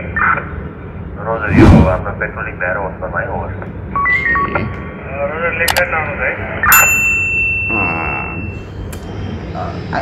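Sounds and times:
bright bell ding: 6.7s - 8.6s.

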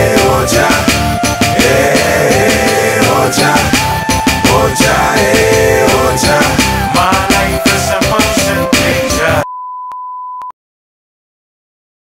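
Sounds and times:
hip-hop beat: 0.0s - 9.5s
high electronic beep: 8.5s - 10.5s.

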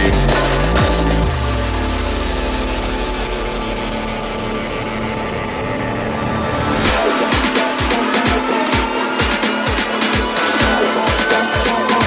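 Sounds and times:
rapidly pulsing low bass: 0.0s - 12.0s
sustained synth chords: 0.0s - 12.0s.

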